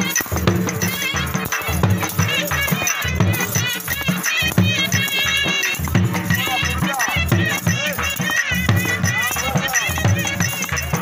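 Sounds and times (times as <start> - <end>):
drum steady beat: 0.0 - 11.0
reedy wind instrument melody: 0.0 - 11.0.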